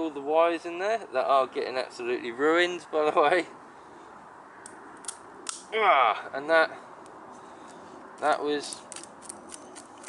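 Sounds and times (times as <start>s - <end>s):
side cutters snipping cable: 8.2s - 10.0s.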